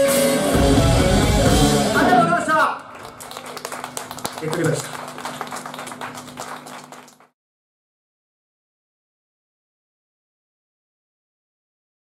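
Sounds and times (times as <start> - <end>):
audience clapping: 2.8 - 7.4
low electrical hum: 2.9 - 7.3.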